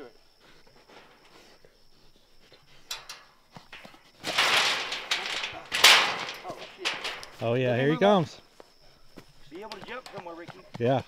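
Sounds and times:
wire trap rattling and scraping: 0:02.8 - 0:08.0
metal trap clattering: 0:02.9 - 0:07.6.

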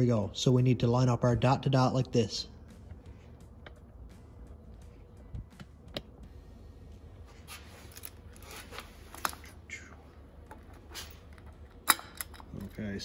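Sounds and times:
metal chain clinking: 0:10.9 - 0:13.0.

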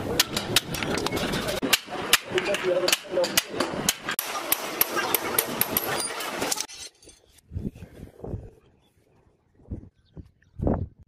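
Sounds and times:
people talking: 0:00.0 - 0:03.7.

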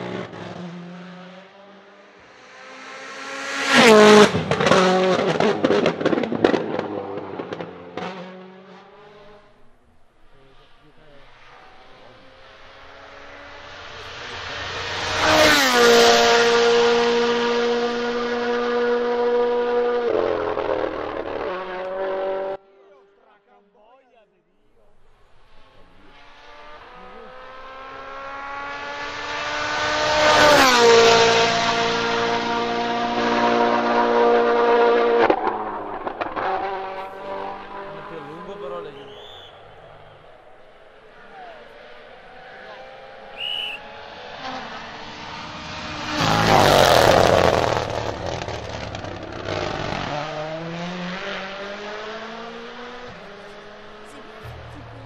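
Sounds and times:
rally cars passing at full throttle: 0:00.0 - 0:23.8, 0:24.6 - 0:55.0.

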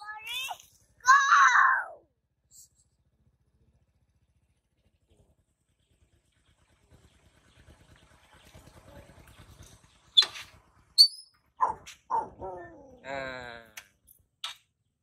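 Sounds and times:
baby monkey squeaks and cries: 0:11.0 - 0:11.3.

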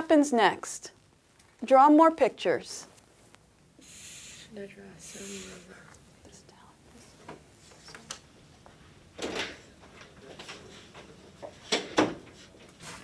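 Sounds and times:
people whispering: 0:03.8 - 0:08.2.

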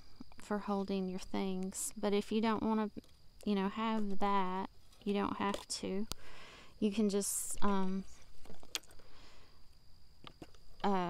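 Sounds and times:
faint steady high tone: 0:00.0 - 0:08.3, 0:10.8 - 0:11.0.

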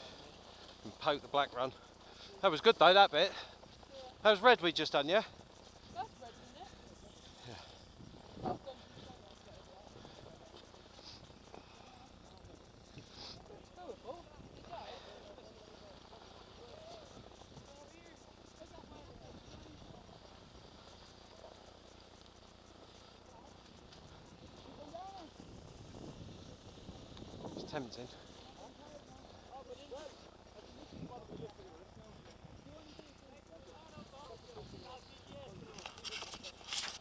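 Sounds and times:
skis sliding over snow: 0:35.7 - 0:37.0.

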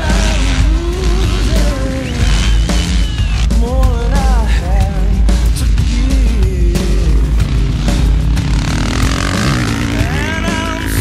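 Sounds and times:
background music: 0:00.0 - 0:11.0
dirt bike engine revving: 0:00.0 - 0:11.0.

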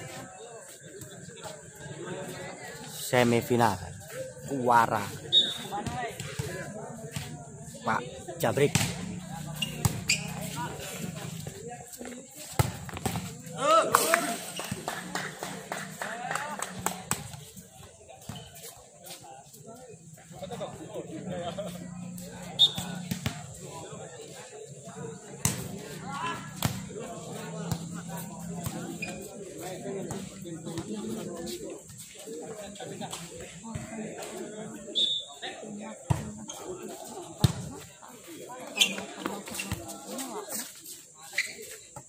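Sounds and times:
people talking: 0:00.0 - 0:42.0.

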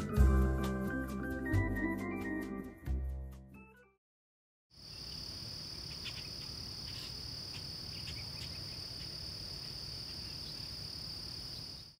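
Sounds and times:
insect chorus high trill: 0:04.8 - 0:12.0.

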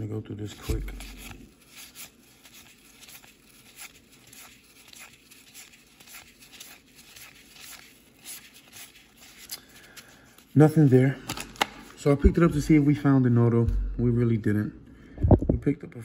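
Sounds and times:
cards flicking and rustling: 0:00.4 - 0:12.4.

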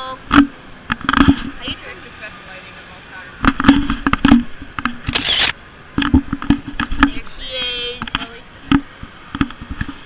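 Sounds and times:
camera handling knocks and rubbing: 0:00.3 - 0:01.6, 0:03.4 - 0:05.4, 0:06.0 - 0:07.2, 0:08.0 - 0:10.0.

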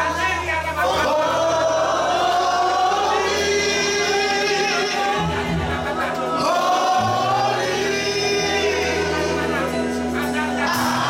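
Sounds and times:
congregation singing: 0:00.0 - 0:11.0
man singing into a microphone: 0:02.5 - 0:11.0.

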